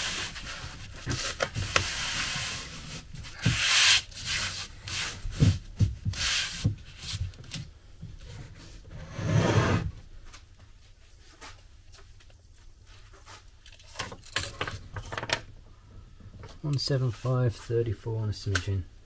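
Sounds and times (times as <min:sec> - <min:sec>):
hands brushing foam sheet: 0:00.0 - 0:07.3
timber scraping on boards: 0:08.3 - 0:10.0.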